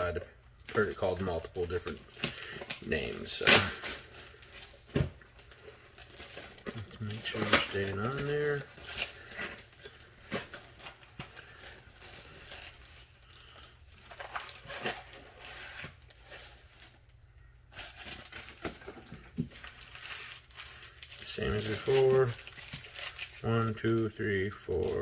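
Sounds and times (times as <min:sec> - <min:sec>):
foil packs rustling: 0:00.0 - 0:17.1, 0:17.7 - 0:25.0
cellophane crinkling: 0:00.0 - 0:25.0.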